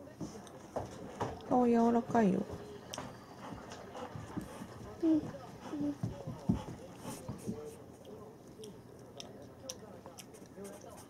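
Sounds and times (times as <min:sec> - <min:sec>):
dog panting: 0:02.4 - 0:08.1.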